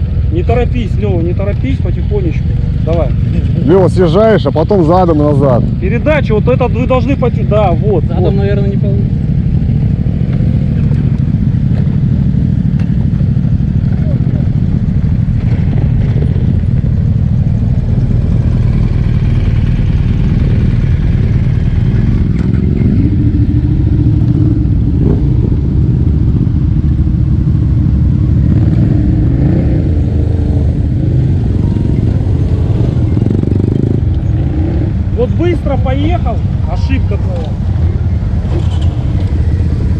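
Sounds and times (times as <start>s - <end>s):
motorcycle engines idling: 0.0s - 39.9s
steady engine hum: 0.0s - 39.9s.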